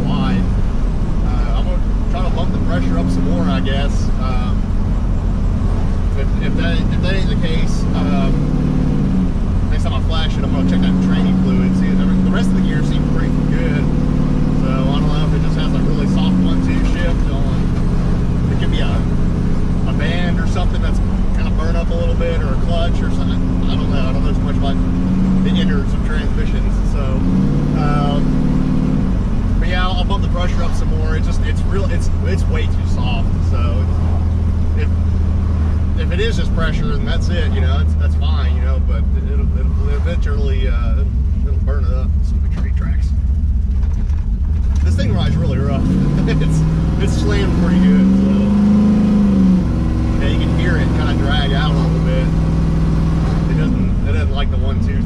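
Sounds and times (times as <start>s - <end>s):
car engine while driving: 0.0s - 55.0s
road noise: 0.0s - 55.0s.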